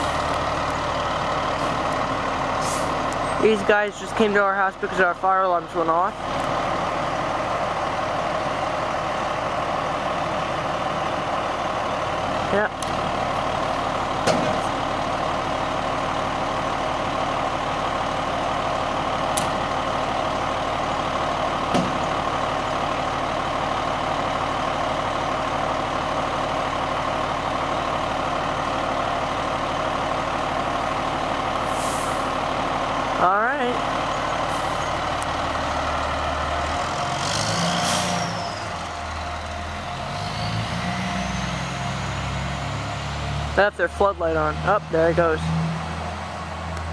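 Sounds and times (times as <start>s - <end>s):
fire engine idling: 0.0s - 40.2s, 41.6s - 46.9s.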